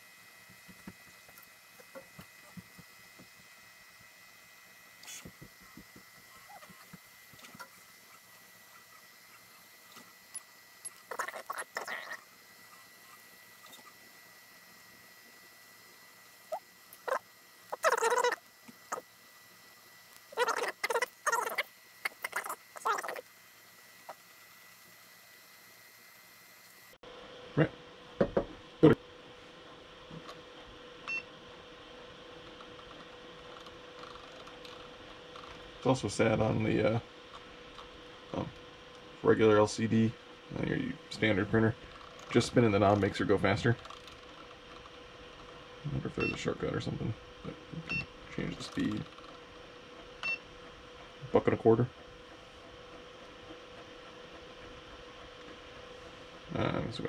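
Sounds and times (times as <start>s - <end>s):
stepper motors chirping and whirring: 0.0s - 27.0s.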